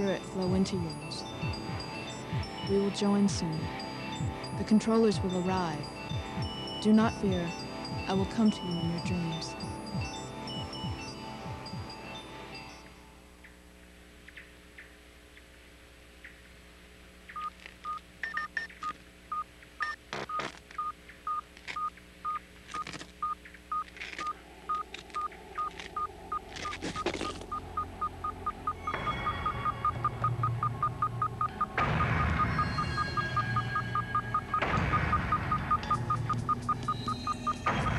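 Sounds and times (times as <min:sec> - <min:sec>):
electronic beeping: 0:00.0 - 0:13.0, 0:17.3 - 0:37.9
low rumble: 0:24.3 - 0:37.9.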